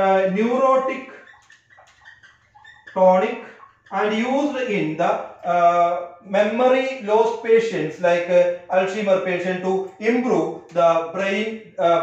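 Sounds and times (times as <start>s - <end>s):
whiteboard marker squeaking: 0.8s - 4.2s.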